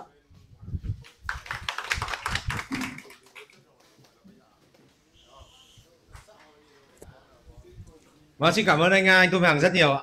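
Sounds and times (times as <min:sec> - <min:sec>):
people applauding: 0:01.1 - 0:03.6.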